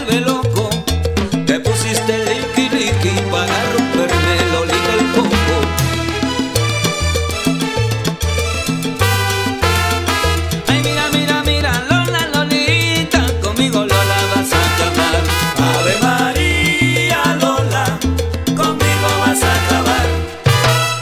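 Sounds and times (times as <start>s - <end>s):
rhythmic bass line: 0.0s - 21.0s
salsa band playing: 0.0s - 21.0s.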